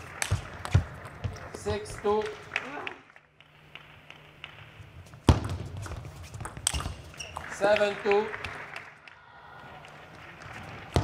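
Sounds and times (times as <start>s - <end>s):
table tennis ball bouncing: 0.2s - 1.5s, 3.7s - 7.5s.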